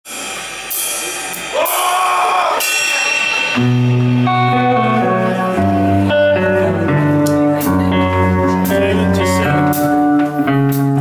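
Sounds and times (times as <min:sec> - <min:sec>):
metal band playing loudly: 0:00.1 - 0:11.0.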